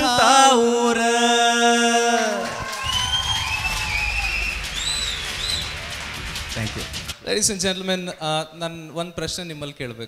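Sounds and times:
man singing into microphone: 0.0s - 2.7s
audience applause and cheering: 1.1s - 7.2s
whistles: 2.6s - 6.0s.

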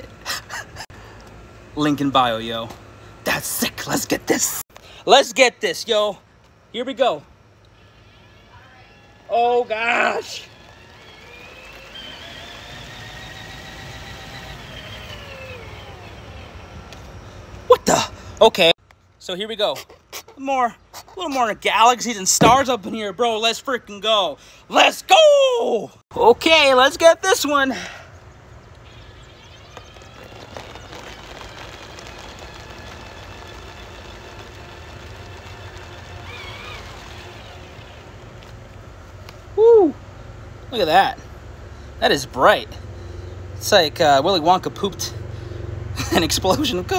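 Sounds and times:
power drill motor whining: 7.6s - 17.2s, 28.7s - 38.6s.

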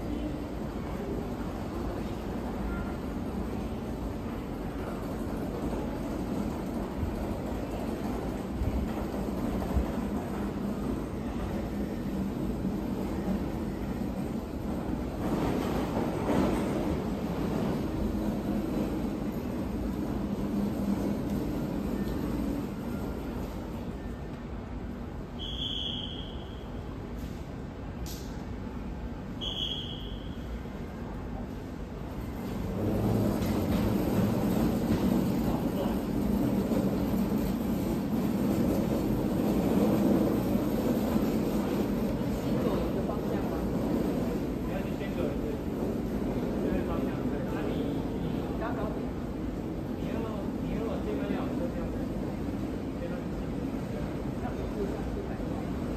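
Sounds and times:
electric train rumbling in tunnel: 0.0s - 55.9s.

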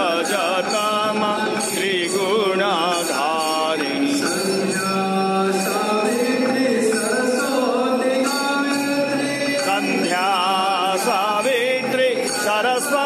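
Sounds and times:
bells ringing: 0.0s - 13.0s
voices chanting mantras: 0.0s - 13.0s.

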